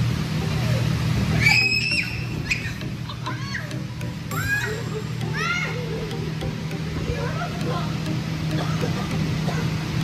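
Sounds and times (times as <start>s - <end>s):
steady low hum: 0.0s - 10.0s
children squealing and shrieking: 1.3s - 3.7s.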